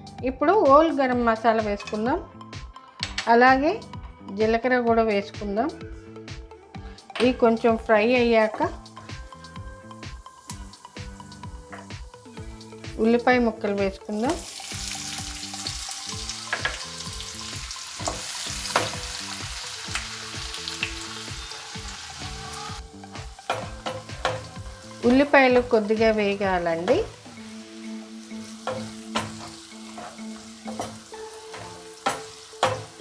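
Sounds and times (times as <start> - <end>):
onions sizzling in hot oil: 14.1 - 33.0.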